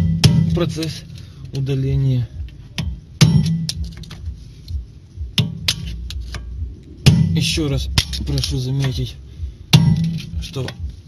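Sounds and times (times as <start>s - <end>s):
hammer striking metal: 0.0s - 1.0s, 2.7s - 4.1s, 5.3s - 9.0s, 9.7s - 10.8s.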